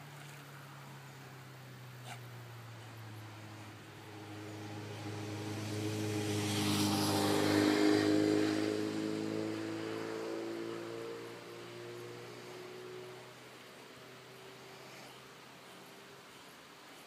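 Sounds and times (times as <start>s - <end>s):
vehicle engine hum: 0.0s - 17.0s.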